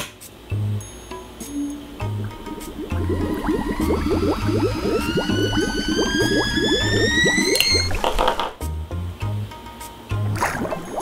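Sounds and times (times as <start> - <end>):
kettle whistle rising in pitch: 1.5 - 8.5
music with pulsing bass: 1.9 - 9.5
water bubbling in a kettle: 2.0 - 8.6, 10.4 - 11.0.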